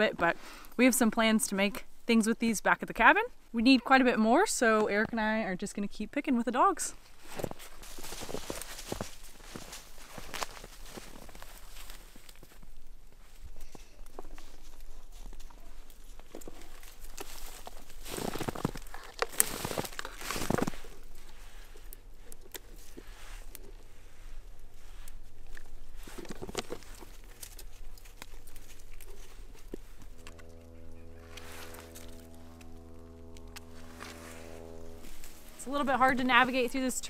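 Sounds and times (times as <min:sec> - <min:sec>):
footsteps crunching in snow: 0:07.0 - 0:12.6, 0:14.2 - 0:21.8, 0:25.8 - 0:37.0
rustling of dry brush: 0:07.0 - 0:12.6, 0:13.2 - 0:37.0
steady hum with overtones: 0:27.6 - 0:37.0.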